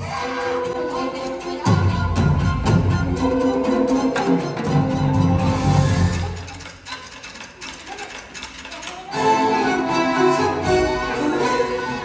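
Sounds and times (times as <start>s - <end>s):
theatre orchestra music: 0.0s - 12.0s
rapid rattling clicks: 6.4s - 9.1s.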